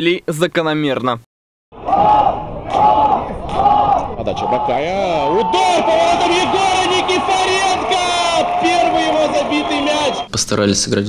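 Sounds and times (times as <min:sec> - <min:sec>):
crowd noise: 0:01.7 - 0:10.3
voices shouting long drawn-out: 0:01.7 - 0:10.3.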